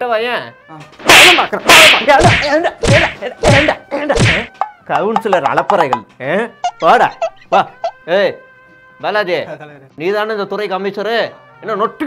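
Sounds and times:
hand slaps on a person: 1.0 - 4.6.

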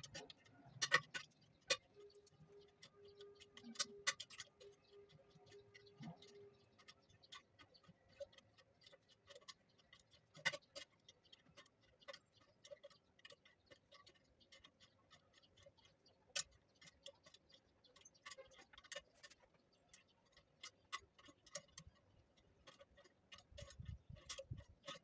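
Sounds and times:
metallic clicks of rebar bending: 0.0 - 25.0.

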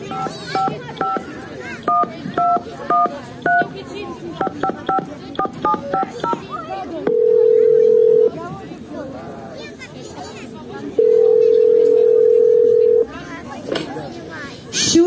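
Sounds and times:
telephone keypad beeps: 0.1 - 1.3, 1.9 - 3.7, 4.4 - 6.5, 11.0 - 13.0.

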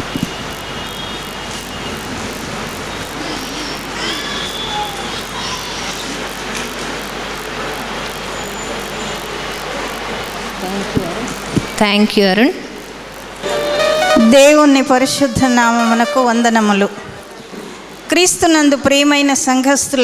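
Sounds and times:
steady background noise: 0.0 - 20.0.

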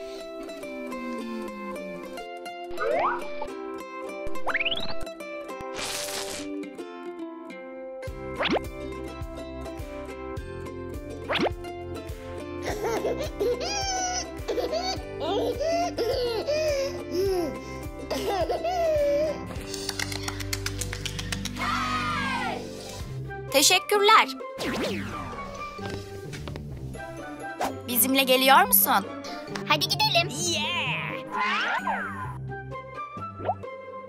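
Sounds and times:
cheerful children's music: 6.6 - 34.0
quick hand claps: 19.6 - 21.6.

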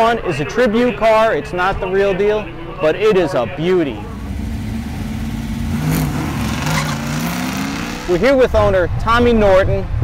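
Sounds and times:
car engine accelerating hard: 4.0 - 8.4.

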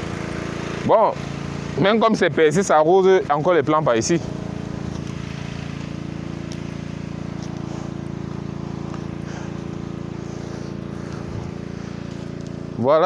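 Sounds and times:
pump engine running: 0.0 - 13.0.

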